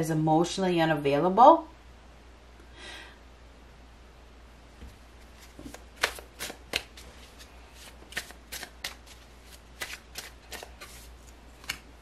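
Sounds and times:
cards shuffled by hand: 0:05.2 - 0:12.0.

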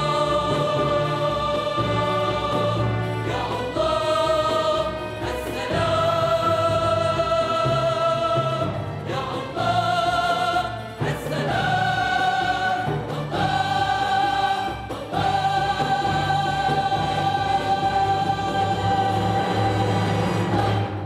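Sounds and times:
choir singing: 0:00.0 - 0:21.0
symphony orchestra: 0:00.0 - 0:21.0.

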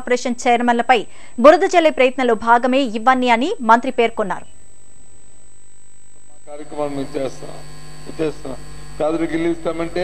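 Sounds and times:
electrical mains hum: 0:00.0 - 0:10.0
man speaking: 0:06.3 - 0:10.0.

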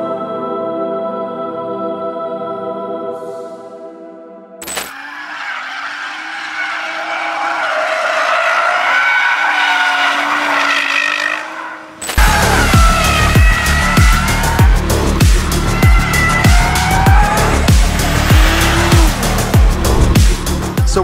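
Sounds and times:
tyres squealing: 0:04.9 - 0:20.2
car engine running hard: 0:05.9 - 0:20.8
music with a steady beat: 0:12.2 - 0:21.0.

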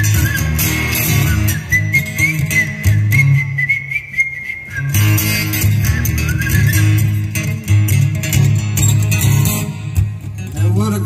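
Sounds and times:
high whistling tone: 0:00.0 - 0:07.3
acoustic guitar playing: 0:00.0 - 0:11.0.

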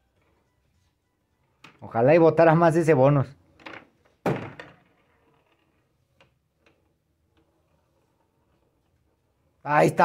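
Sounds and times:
pinball ball launch thunk: 0:04.2 - 0:04.8.

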